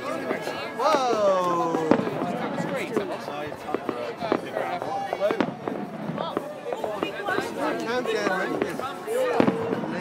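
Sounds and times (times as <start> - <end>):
fireworks bursting: 0.0 - 10.0
people talking: 0.0 - 10.0.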